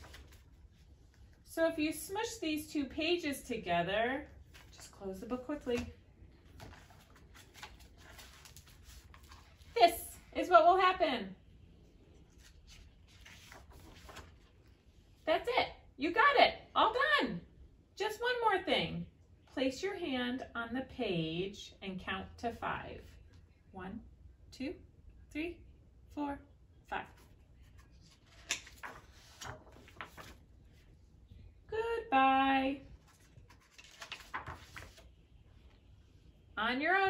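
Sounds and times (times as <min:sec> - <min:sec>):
paper pages rustling and turning: 0:00.0 - 0:01.4, 0:04.4 - 0:09.8, 0:12.1 - 0:14.8, 0:27.0 - 0:30.9, 0:32.9 - 0:35.8.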